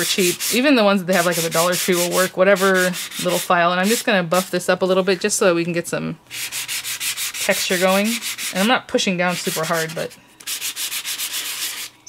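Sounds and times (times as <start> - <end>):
foam block scrubbing cardstock: 0.0 - 4.0, 6.3 - 12.0.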